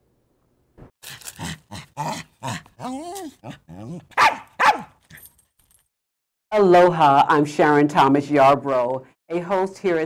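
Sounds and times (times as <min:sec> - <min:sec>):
dog barking: 0:03.4 - 0:05.0.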